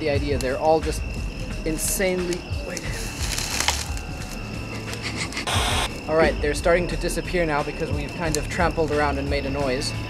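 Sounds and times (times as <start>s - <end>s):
insect trill: 0.0s - 10.0s
footsteps crunching dry grass: 2.7s - 4.4s.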